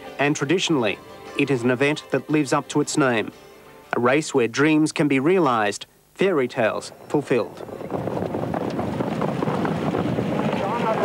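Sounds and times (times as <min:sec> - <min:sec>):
rumble of horses and sulkies: 0:06.8 - 0:11.0.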